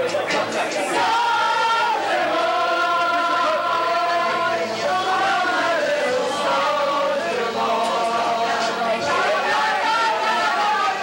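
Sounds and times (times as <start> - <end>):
voices singing long held notes: 0.0 - 11.0.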